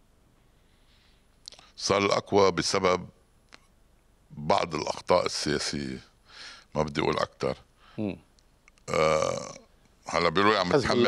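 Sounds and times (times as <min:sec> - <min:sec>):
man humming mm: 0:08.9 - 0:09.7
rough throaty vocal sound: 0:08.9 - 0:09.8.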